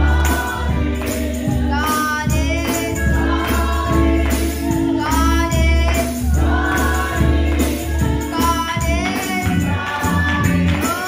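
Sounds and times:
gospel singing with bass and percussion: 0.0 - 11.0.

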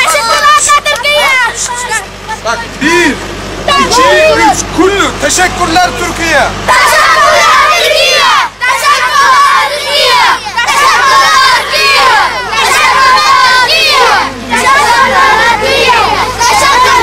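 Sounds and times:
crowd of children shouting: 0.0 - 2.6, 3.7 - 4.6, 6.3 - 17.0.

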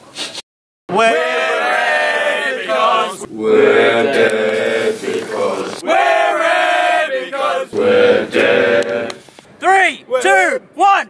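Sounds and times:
long held shout: 0.9 - 3.2
young men chanting in unison: 0.9 - 9.2.

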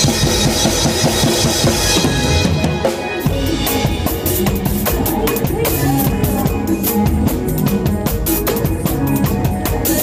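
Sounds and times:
drum strokes: 0.0 - 10.0.

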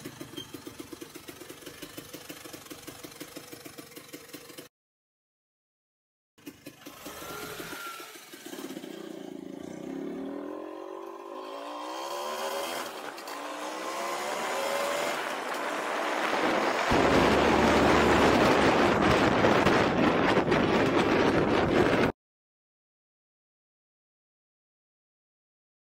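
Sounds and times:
scooter engine accelerating: 0.0 - 4.7, 6.4 - 22.1
wind noise on microphone: 15.8 - 22.2.

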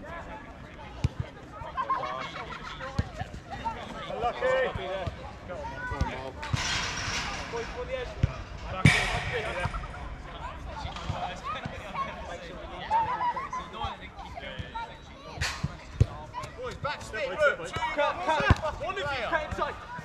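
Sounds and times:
sharp loud impact: 8.6 - 10.5
football kicked and bouncing: 15.6 - 20.0.

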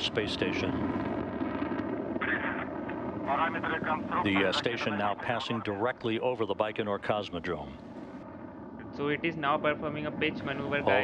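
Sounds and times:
man talking: 0.0 - 0.8, 3.3 - 7.8, 8.8 - 11.0
rocket engines roaring: 0.0 - 11.0.

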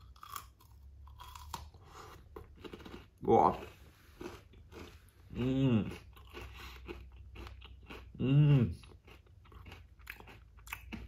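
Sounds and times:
person chewing crunchy snack: 0.0 - 11.0.

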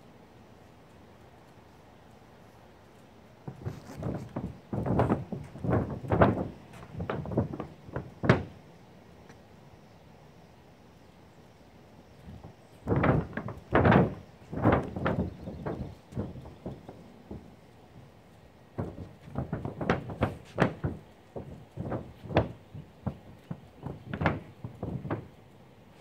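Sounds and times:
footsteps on a roof: 2.9 - 8.6, 12.2 - 25.4
paint roller knocking on roof: 3.5 - 8.6, 12.4 - 17.6, 18.8 - 25.3.

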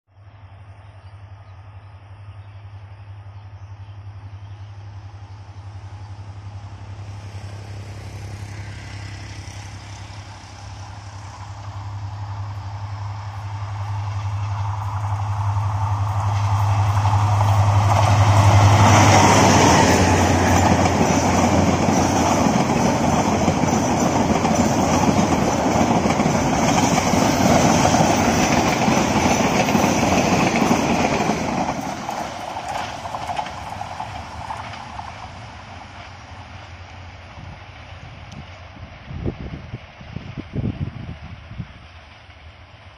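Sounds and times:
diesel locomotive engine drone: 0.1 - 42.9
train wheels running over rails: 5.0 - 42.9.

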